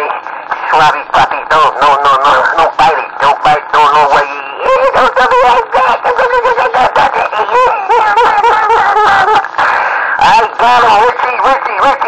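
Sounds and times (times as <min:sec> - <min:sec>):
voice over radio speaker: 0:00.0 - 0:12.0.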